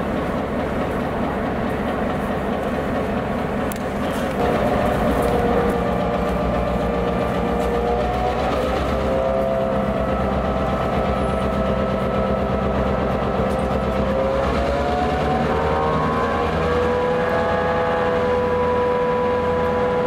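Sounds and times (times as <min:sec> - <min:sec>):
locomotive engine idling: 0:00.0 - 0:20.0
whining tones: 0:03.6 - 0:20.0.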